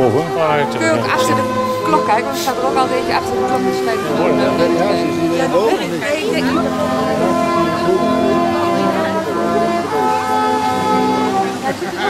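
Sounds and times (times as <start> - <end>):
music with slow held notes: 0.0 - 12.0
voices talking: 0.0 - 12.0.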